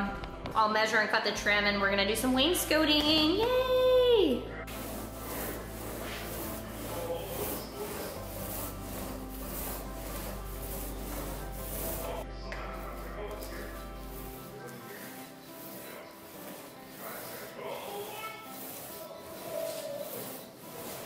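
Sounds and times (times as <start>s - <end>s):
paint roller on wooden door: 2.9s - 21.0s.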